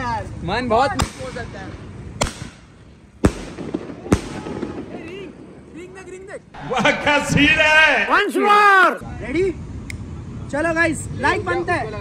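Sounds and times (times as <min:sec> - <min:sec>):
firework shells bursting: 0:01.0 - 0:06.1.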